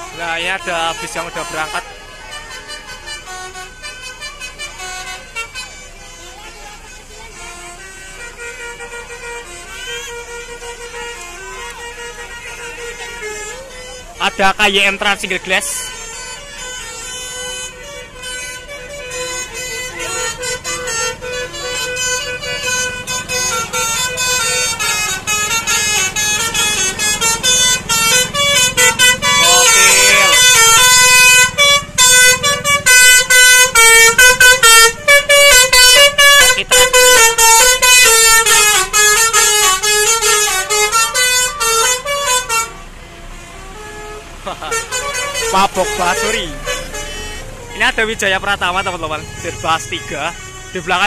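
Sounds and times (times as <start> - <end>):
musical air horn melody: 0.0 - 51.0.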